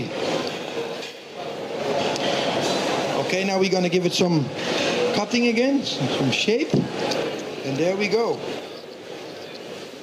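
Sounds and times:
large hall hubbub: 0:00.0 - 0:10.0.

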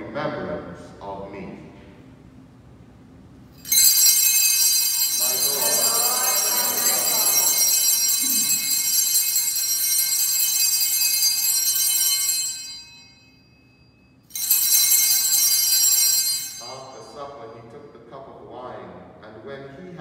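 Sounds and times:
small bells ringing: 0:03.6 - 0:17.2.

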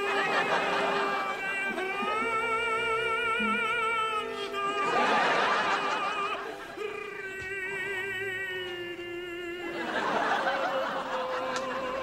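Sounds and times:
studio audience laughing: 0:00.0 - 0:02.3, 0:04.8 - 0:06.8, 0:09.6 - 0:12.0
steady held tone: 0:00.3 - 0:08.5.

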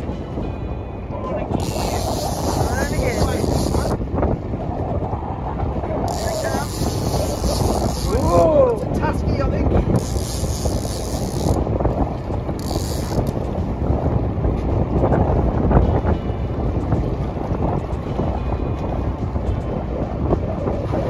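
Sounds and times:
boat rumbling on choppy sea: 0:00.0 - 0:21.0
wind buffeting microphone: 0:00.0 - 0:21.0.

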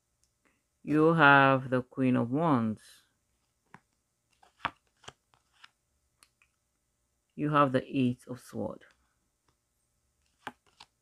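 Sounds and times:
cards snapping and flicking: 0:10.3 - 0:11.0.

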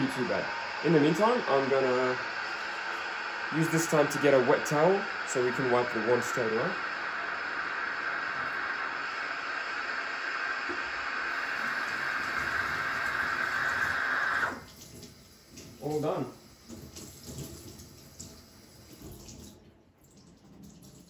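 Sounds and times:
steam wand frothing milk: 0:00.0 - 0:16.9.

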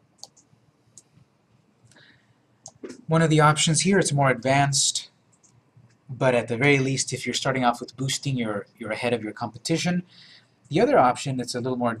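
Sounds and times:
computer mouse clicks: 0:00.2 - 0:01.2, 0:02.6 - 0:03.1, 0:05.3 - 0:06.1.

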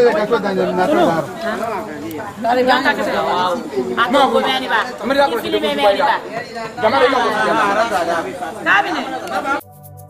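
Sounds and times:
people chattering: 0:00.0 - 0:09.7.

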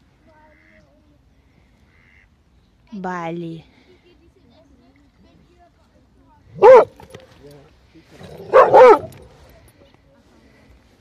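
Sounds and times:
dog barking high-pitched: 0:06.6 - 0:07.0, 0:08.5 - 0:09.2.

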